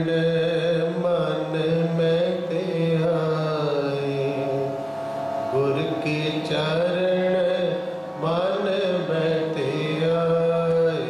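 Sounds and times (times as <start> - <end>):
devotional singing: 0.0 - 4.8, 5.5 - 11.0
harmonium chords: 0.0 - 11.0.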